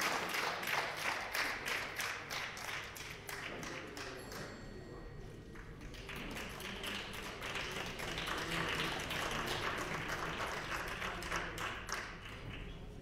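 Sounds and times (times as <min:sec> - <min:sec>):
applause from many people: 0:00.0 - 0:04.5, 0:05.5 - 0:13.0.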